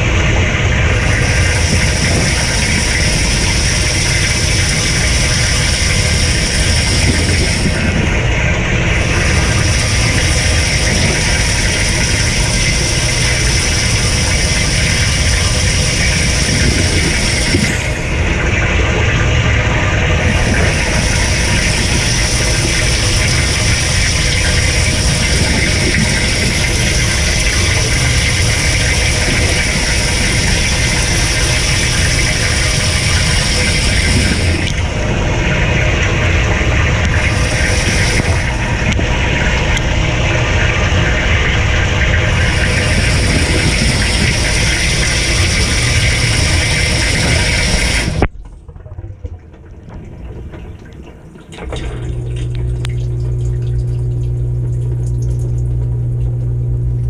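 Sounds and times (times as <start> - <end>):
spray arm showering water: 0.0 - 48.3
dishwasher pump humming: 0.0 - 57.0.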